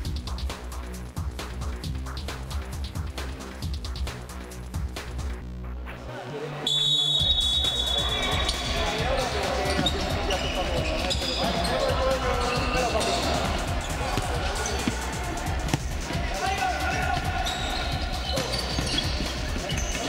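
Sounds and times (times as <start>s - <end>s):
music: 0.0s - 20.0s
players shouting: 7.6s - 20.0s.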